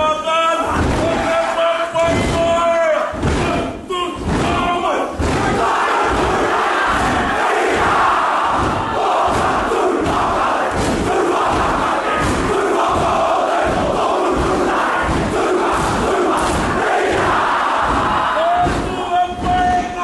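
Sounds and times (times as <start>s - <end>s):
stamping and body slaps: 2.1s - 20.0s
many voices chanting in unison: 3.2s - 20.0s.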